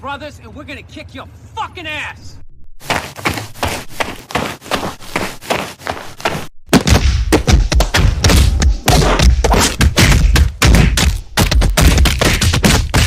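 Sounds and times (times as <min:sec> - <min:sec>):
heavy thuds and bangs: 0:06.2 - 0:13.0.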